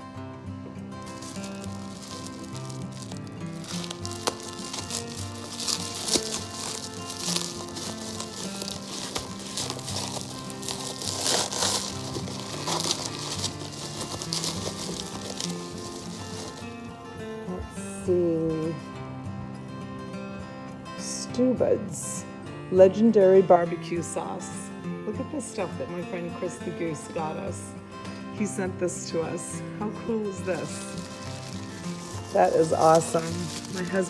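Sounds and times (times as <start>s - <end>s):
background music with held notes: 0.0s - 34.0s
bubble wrap crackling: 0.8s - 17.0s, 30.3s - 34.0s.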